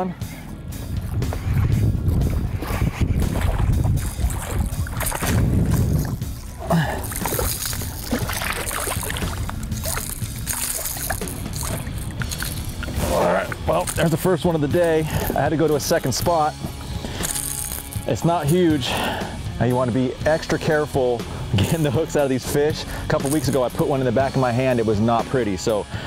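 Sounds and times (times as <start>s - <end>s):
background music: 0.0s - 26.0s
wind rumbling on microphone: 0.6s - 14.0s
fish splashing at water surface: 1.3s - 14.2s.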